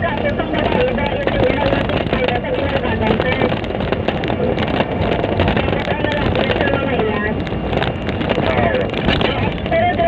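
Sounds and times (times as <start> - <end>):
voices: 0.0 - 3.6, 4.2 - 7.5, 8.2 - 10.0
vehicle engine and road noise: 0.0 - 10.0.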